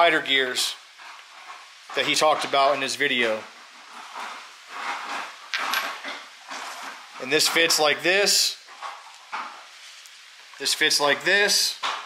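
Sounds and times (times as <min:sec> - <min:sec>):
soft rustling: 0:00.2 - 0:10.7.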